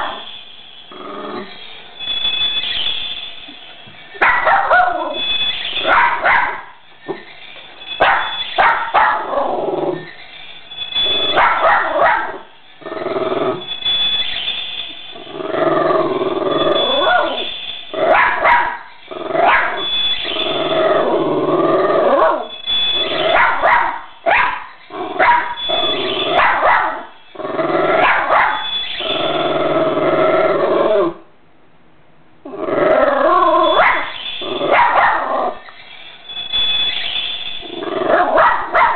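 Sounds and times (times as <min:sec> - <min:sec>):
small dog barking and yipping: 0:04.1 - 0:06.8, 0:07.8 - 0:10.2, 0:11.0 - 0:12.5, 0:16.8 - 0:20.0, 0:22.1 - 0:27.2, 0:27.9 - 0:28.8, 0:33.4 - 0:35.9, 0:38.0 - 0:38.9.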